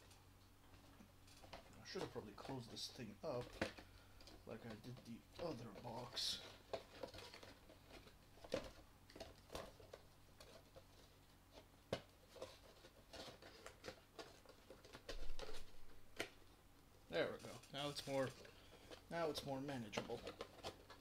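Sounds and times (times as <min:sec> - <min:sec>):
packaging box being handled: 0:00.7 - 0:16.4, 0:17.8 - 0:21.0.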